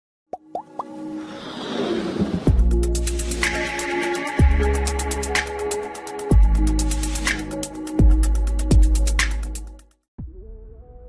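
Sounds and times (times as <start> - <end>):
quick pops rising in pitch: 0.3 - 1.0
music: 0.4 - 11.0.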